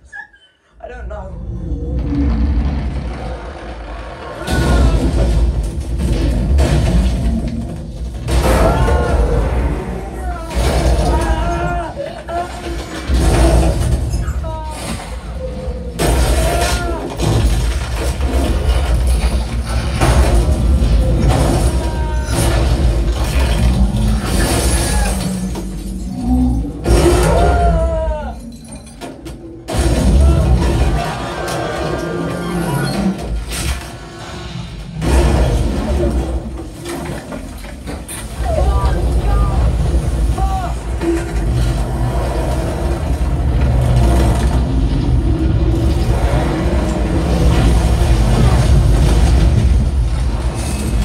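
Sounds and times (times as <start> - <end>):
deep low rumble: 1.1 - 11.2
crashing effects: 1.8 - 27.8, 28.4 - 51.0.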